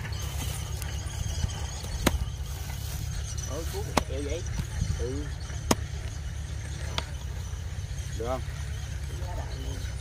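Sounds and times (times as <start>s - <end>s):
low steady rumble: 0.0s - 10.0s
hoe knocking dry soil: 1.5s - 2.9s, 3.8s - 4.8s, 5.5s - 6.2s.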